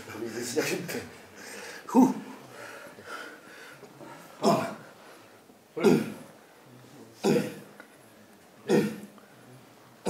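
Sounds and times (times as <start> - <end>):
man grunting with effort: 4.4 - 4.8.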